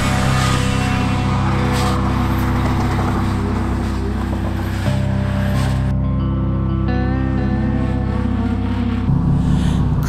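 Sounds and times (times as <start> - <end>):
car engine revving hard: 0.0 - 5.9
music with low chords: 0.0 - 10.0.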